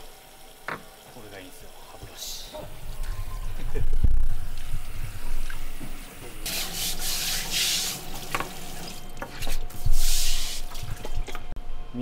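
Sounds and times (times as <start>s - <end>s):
tap water running: 0.0s - 11.6s
toothbrush scrubbing fish: 6.5s - 11.4s.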